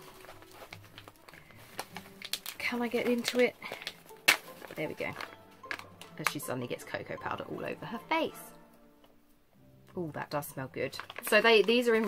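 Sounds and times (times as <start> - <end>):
packet rustling: 0.0 - 7.3, 10.3 - 12.0.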